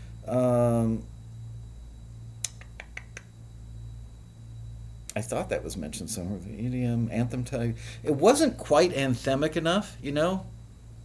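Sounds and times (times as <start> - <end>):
low electrical hum: 0.0 - 11.0
short sharp clicks: 2.4 - 3.3.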